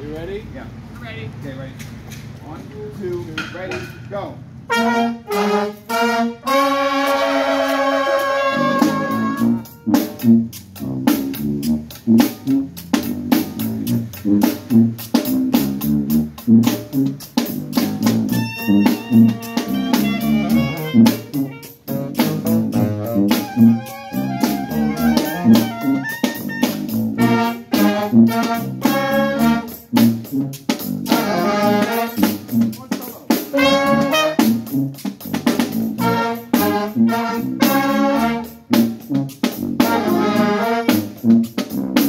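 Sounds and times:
brass band playing: 0:04.6 - 0:42.0
bass drum beat: 0:07.8 - 0:42.0.

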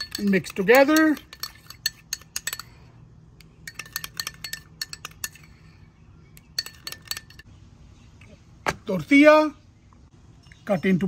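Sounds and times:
metal spoon clinking ceramic bowl: 0:00.0 - 0:02.8, 0:03.6 - 0:05.7, 0:06.4 - 0:07.5.

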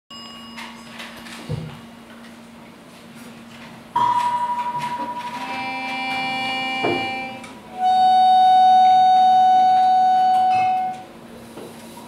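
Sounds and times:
accordion chord: 0:05.2 - 0:10.4.

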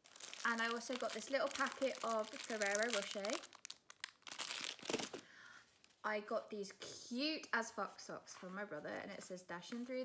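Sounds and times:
plastic wrapper crinkling: 0:00.0 - 0:06.0.

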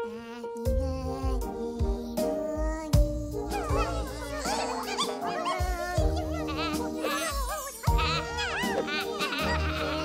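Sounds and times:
light background music: 0:00.0 - 0:10.0
cartoon squeaks and chirps: 0:03.5 - 0:10.0.

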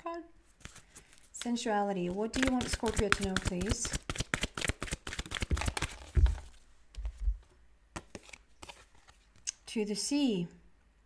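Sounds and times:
cards being shuffled: 0:00.5 - 0:09.5.

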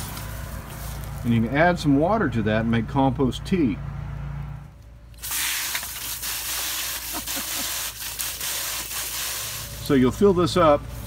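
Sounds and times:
hose water spraying into bucket: 0:05.2 - 0:10.2.

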